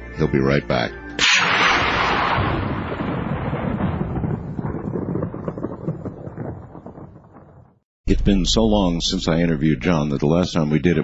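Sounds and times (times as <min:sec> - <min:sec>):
low crackly rumble of a boom: 0:01.5 - 0:10.6.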